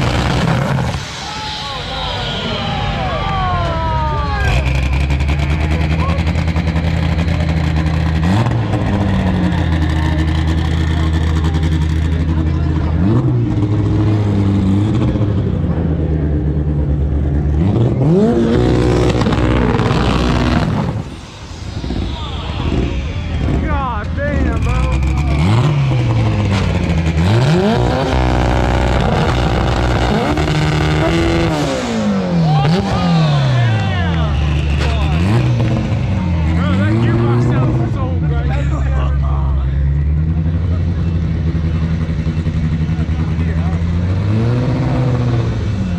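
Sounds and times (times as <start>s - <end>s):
car engine revving: 0.0s - 45.9s
crowd noise: 0.0s - 45.9s.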